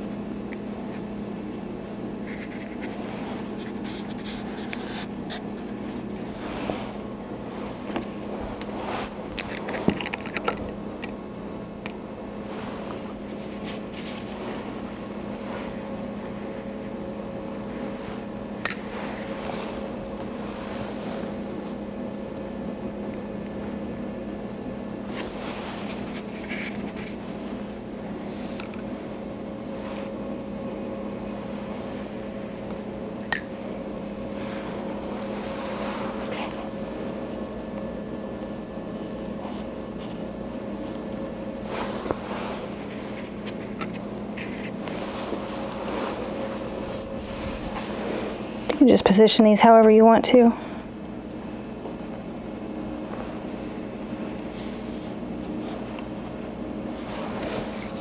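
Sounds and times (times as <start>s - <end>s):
ventilation hum: 0.0s - 58.0s.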